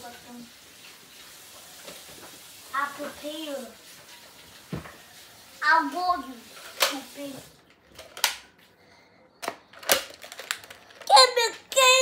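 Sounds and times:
child speaking: 0.0 - 0.6, 2.7 - 3.8, 5.6 - 7.6, 11.0 - 12.0.

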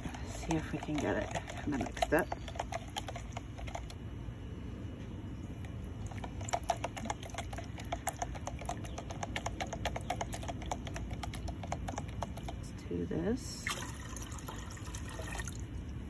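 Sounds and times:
spoon stirring in plastic container: 0.0 - 4.0, 5.6 - 12.7.

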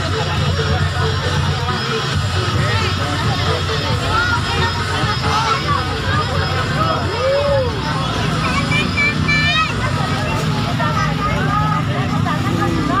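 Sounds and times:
crowd chattering and calling out: 0.0 - 13.0
motorbike engines running: 0.0 - 13.0.

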